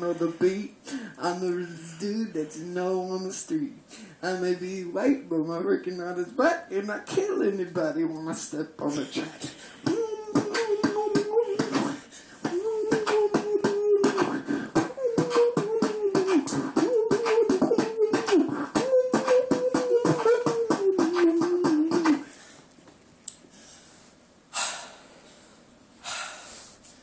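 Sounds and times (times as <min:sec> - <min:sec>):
beatboxing: 0:08.9 - 0:22.4
hummed tone: 0:09.0 - 0:22.5.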